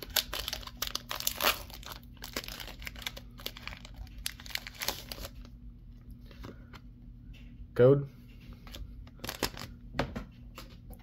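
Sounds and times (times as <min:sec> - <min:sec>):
foil wrapper crinkling and tearing: 0:00.0 - 0:05.4, 0:09.2 - 0:09.7.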